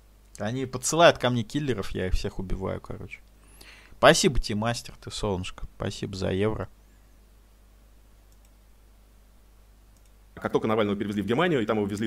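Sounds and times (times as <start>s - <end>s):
low electrical hum: 0.0s - 12.0s
faint clicks: 8.3s - 8.6s, 9.9s - 10.2s.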